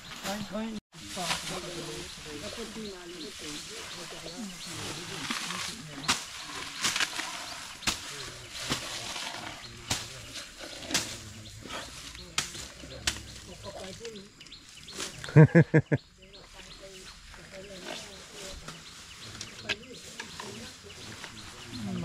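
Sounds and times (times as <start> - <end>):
elephant crunching grass stalks: 1.0 - 15.3.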